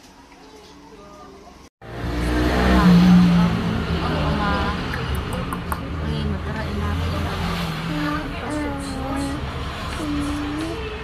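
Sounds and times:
vehicle engine rumbling: 1.8 - 11.0
people's voices: 2.5 - 11.0.

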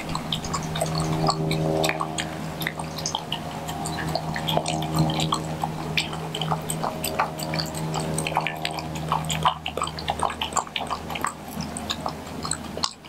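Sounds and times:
dog lapping from plastic bowl: 0.0 - 13.0
low hum: 0.0 - 13.0.

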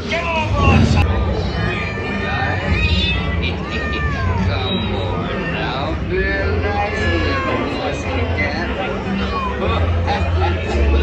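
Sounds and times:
faint music: 0.0 - 11.0
recorded voices crying out: 0.0 - 11.0
low rumble: 0.5 - 1.7.

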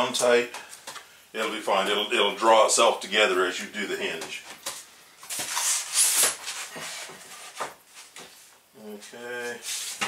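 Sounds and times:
plywood scraping across workbench: 5.3 - 8.5.

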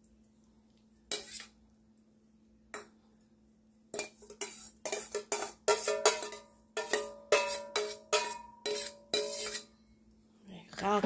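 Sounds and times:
metal spoon clinking on pot: 4.0 - 9.7.

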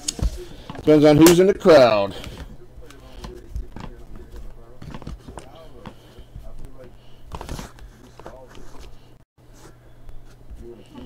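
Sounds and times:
faint voices: 2.0 - 8.9.

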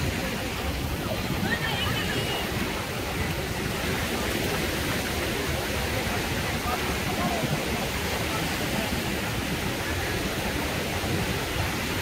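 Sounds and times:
small waves breaking on shore: 0.0 - 12.0.

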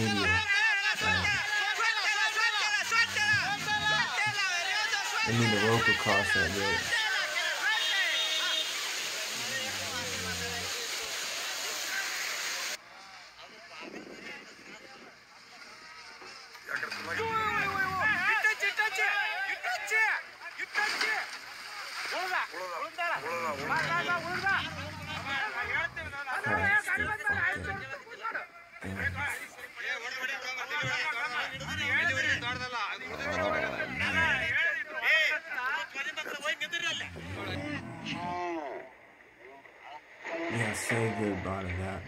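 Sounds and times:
people shouting: 0.0 - 8.7, 23.2 - 26.6, 30.8 - 34.6
floodwater rushing: 0.0 - 12.8, 16.0 - 27.0
voices talking: 0.0 - 42.0.

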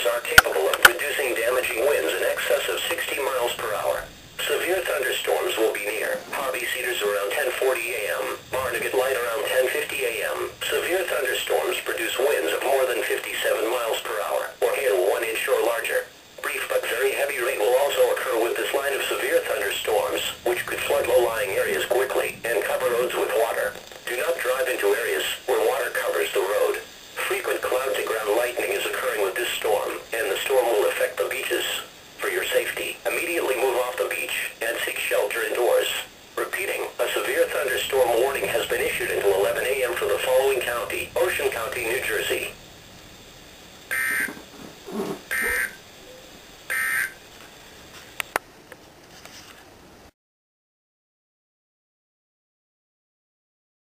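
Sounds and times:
voice through small radio speaker: 0.0 - 42.6, 43.9 - 46.2
low radio hiss: 0.0 - 50.2.

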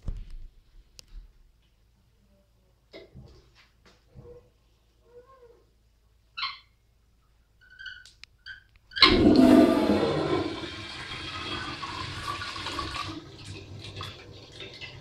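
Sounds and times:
faint squeaks and clicks: 4.0 - 9.1
toilet flushing: 9.0 - 15.0.

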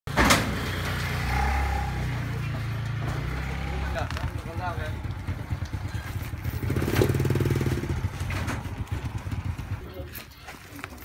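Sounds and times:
vehicle engine rumbling: 0.1 - 11.0.

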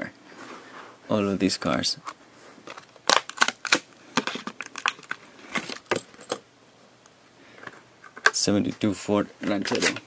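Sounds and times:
plastic blister crackling: 2.7 - 6.0.

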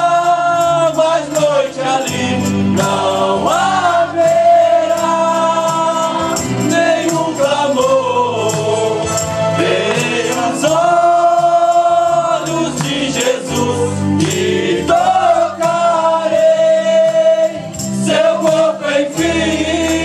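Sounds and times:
men singing a hymn: 0.0 - 20.0
steady percussion beat: 0.0 - 20.0.

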